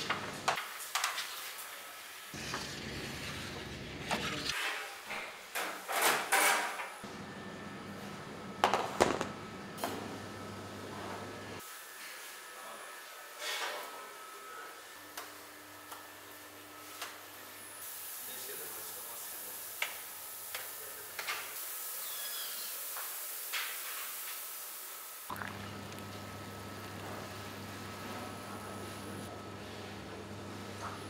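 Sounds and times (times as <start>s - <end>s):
steady hiss: 17.8s - 25.3s.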